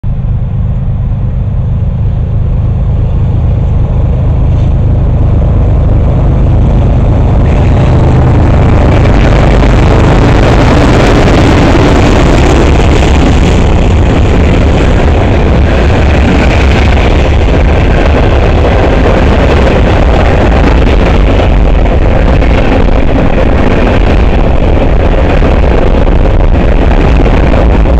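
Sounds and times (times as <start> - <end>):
diesel locomotive engine rumble: 0.0 - 27.9
train wheels clattering on rail: 6.0 - 27.9.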